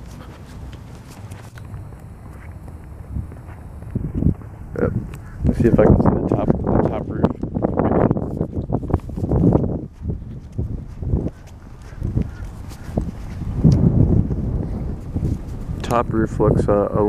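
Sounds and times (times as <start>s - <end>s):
footsteps on asphalt: 0.0s - 15.8s
wind buffeting microphone: 0.0s - 17.0s.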